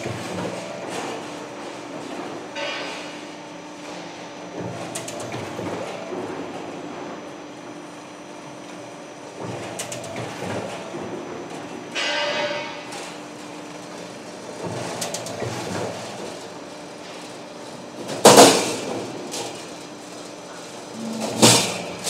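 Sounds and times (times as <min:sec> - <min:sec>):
sheet metal clattering over rollers: 0:00.0 - 0:07.2, 0:09.3 - 0:22.0
ringing metallic clang: 0:12.0 - 0:12.9.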